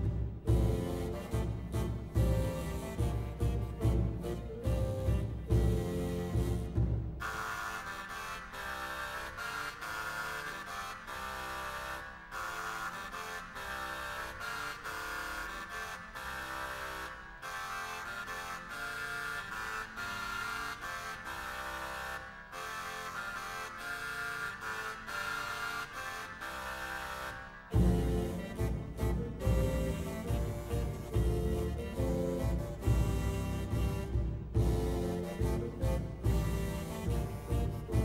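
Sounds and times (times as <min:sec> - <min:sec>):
reed wind consort dance music: 0:00.0 - 0:38.0.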